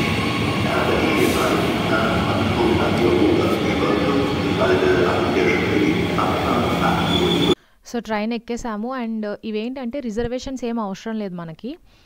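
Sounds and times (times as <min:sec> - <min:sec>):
train carriages rumbling past: 0:00.0 - 0:07.6
voices murmuring: 0:00.6 - 0:07.6.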